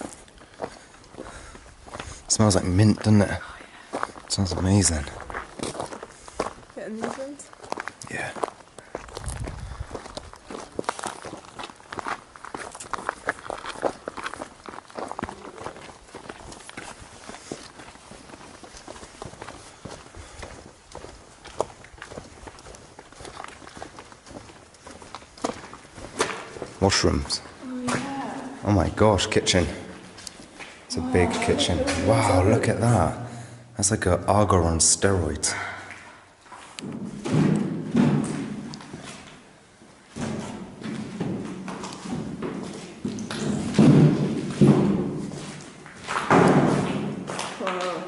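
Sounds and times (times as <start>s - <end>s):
footsteps on gravel: 0.0s - 29.0s.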